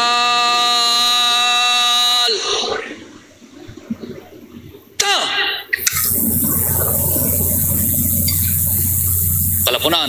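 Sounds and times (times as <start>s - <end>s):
open-air hiss: 0.0s - 10.0s
man shouting drill command: 9.6s - 10.0s.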